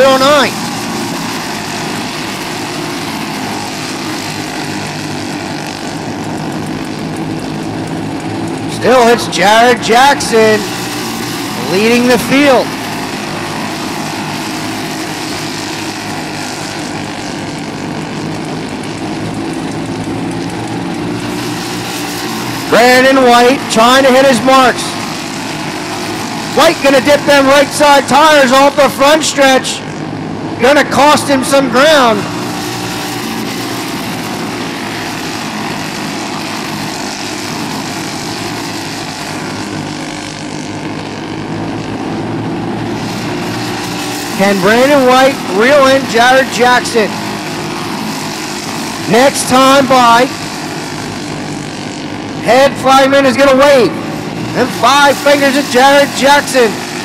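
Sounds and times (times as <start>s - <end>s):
kart engines droning: 0.0s - 57.0s.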